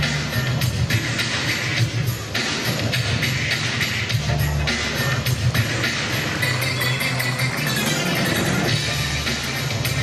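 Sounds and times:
music with low bass line: 0.0s - 10.0s.

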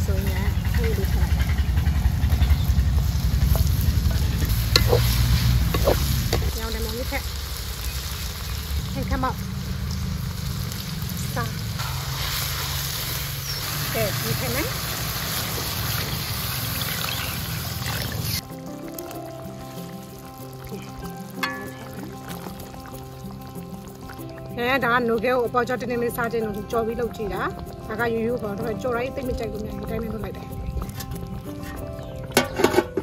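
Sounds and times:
steady low rumble: 0.0s - 16.6s
tomatoes sizzling in hot oil: 0.0s - 32.8s
wooden spatula scraping wok: 0.6s - 7.2s
plucked background music: 3.4s - 7.2s, 16.3s - 33.0s
spatula stirring: 3.5s - 6.5s.

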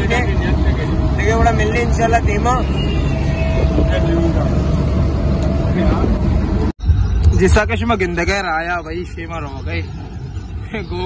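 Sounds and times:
vehicle road and engine noise: 0.0s - 11.0s.

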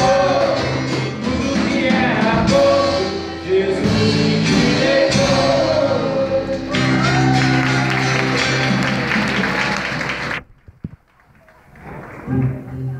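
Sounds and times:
live band guitar and drums: 0.0s - 10.4s
people clapping: 6.7s - 12.8s.

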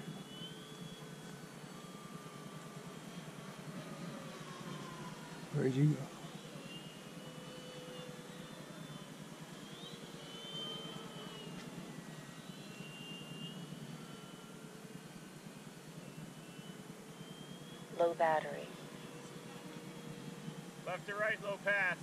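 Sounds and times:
faint whine of model plane motors: 0.0s - 22.0s.

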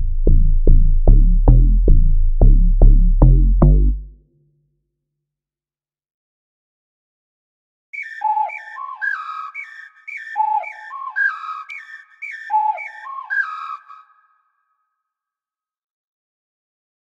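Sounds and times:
whistled melody: 8.0s - 14.9s.

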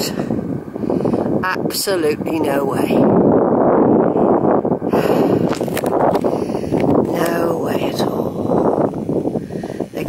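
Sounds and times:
wind buffeting microphone: 0.0s - 10.0s
brief crackles: 5.4s - 7.4s.

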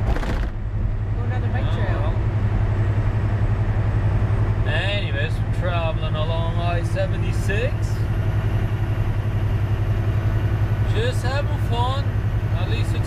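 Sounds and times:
truck diesel engine drone: 0.0s - 13.0s.

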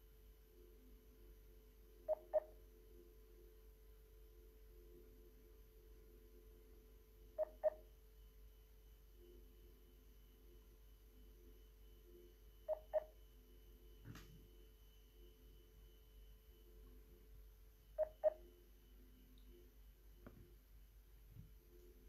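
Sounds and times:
faint phone line hum: 0.0s - 22.0s.

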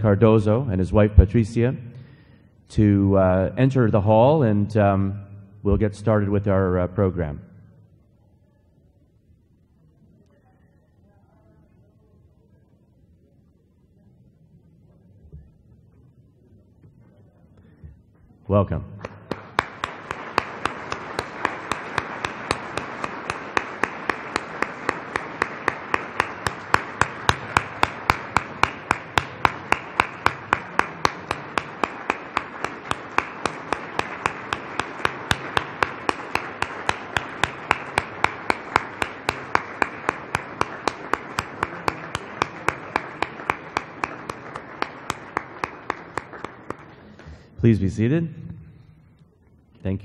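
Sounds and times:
close hand claps: 19.0s - 47.1s
crowd applauding: 19.0s - 47.1s.

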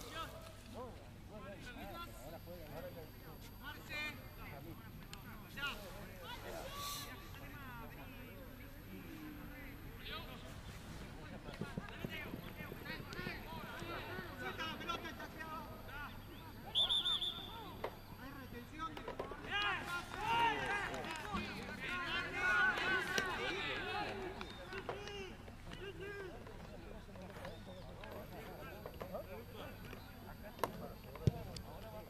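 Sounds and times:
referee's whistle blast: 16.6s - 17.8s.

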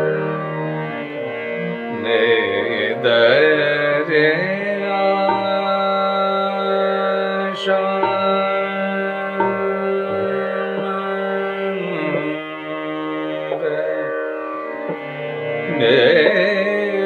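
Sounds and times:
man singing classical vocal: 1.9s - 17.0s.

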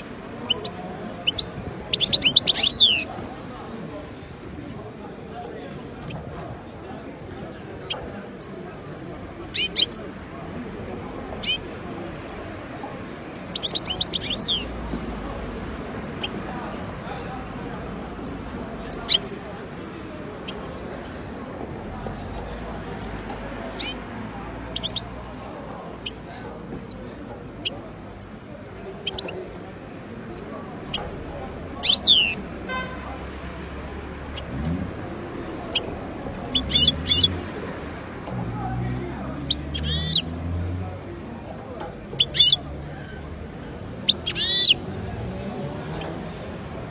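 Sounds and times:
bird twittering: 0.0s - 3.1s, 9.5s - 10.1s, 13.5s - 14.7s, 18.2s - 19.4s, 24.7s - 25.1s, 29.0s - 29.6s, 31.8s - 32.4s, 35.6s - 37.4s, 39.4s - 40.3s, 42.1s - 43.2s, 44.0s - 44.8s
goldfinch twittering: 13.5s - 14.7s, 39.5s - 40.2s, 42.2s - 42.6s, 44.1s - 44.8s
bird high chip: 44.1s - 44.8s.

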